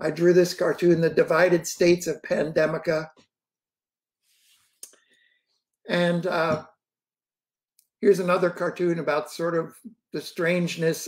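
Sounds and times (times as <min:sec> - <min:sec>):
man speaking: 0:00.0 - 0:03.2, 0:05.9 - 0:06.7, 0:08.0 - 0:11.0
faint breath: 0:04.4 - 0:05.6.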